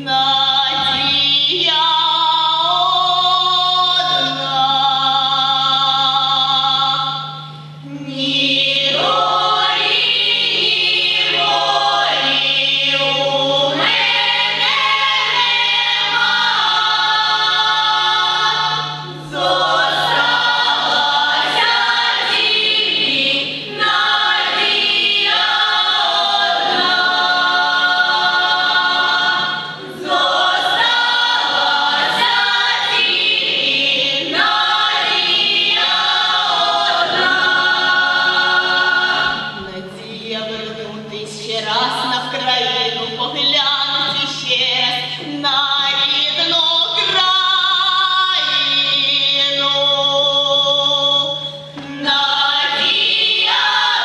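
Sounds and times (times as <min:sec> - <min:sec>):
choir singing unaccompanied: 0:00.0 - 0:40.0, 0:43.6 - 0:54.0.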